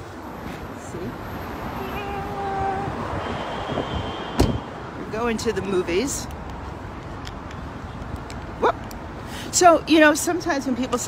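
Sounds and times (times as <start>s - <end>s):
street traffic noise: 0.0s - 11.0s
sharp knock: 4.4s - 4.6s.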